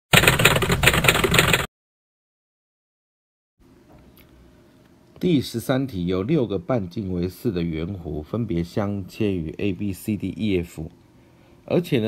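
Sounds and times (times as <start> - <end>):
typewriter key clacks: 0.1 - 1.7.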